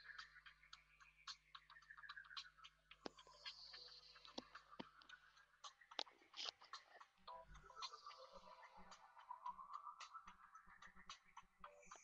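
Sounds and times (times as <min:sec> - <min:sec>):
faint irregular clicks: 0:00.0 - 0:12.0.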